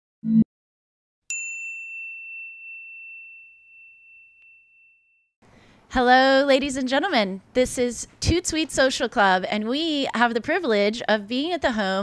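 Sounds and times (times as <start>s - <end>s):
bell-like ding: 1.3s - 5.3s.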